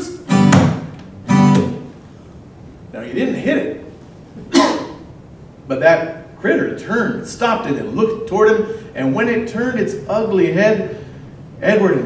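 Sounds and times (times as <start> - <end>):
acoustic guitar strum: 0.0 - 1.9.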